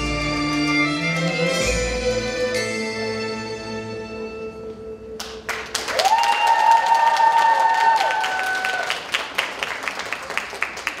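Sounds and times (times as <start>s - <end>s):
string music: 0.0s - 5.7s
audience applause: 5.2s - 11.0s
high cheer from audience: 5.7s - 11.0s.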